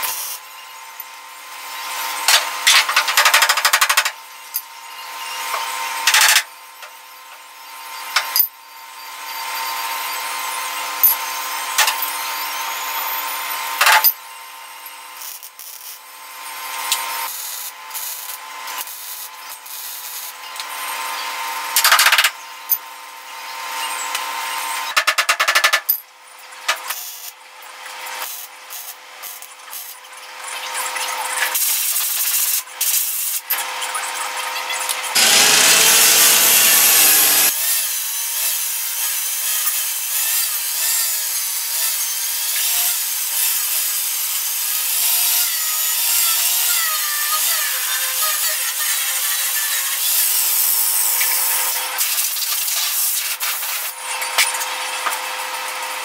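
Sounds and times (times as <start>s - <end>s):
angle grinder grinding metal: 9.0s - 25.8s, 26.7s - 56.0s
welder crackling bursts: 17.2s - 20.4s, 35.2s - 37.7s.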